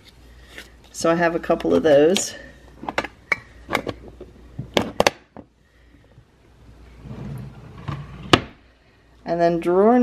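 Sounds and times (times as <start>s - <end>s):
drawer sliding shut: 7.0s - 8.6s.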